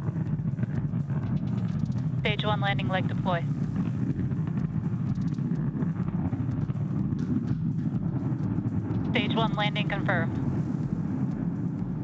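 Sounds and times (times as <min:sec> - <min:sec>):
deep rocket engine rumble: 0:00.0 - 0:12.0.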